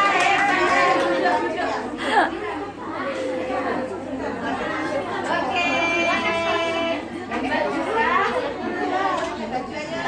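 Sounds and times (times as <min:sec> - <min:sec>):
children's voices chattering: 0:00.0 - 0:10.0.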